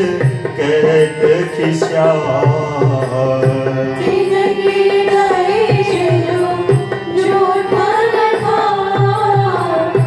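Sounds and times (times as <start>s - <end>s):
harmonium chords: 0.0s - 10.0s
person singing devotional melody: 0.0s - 10.0s.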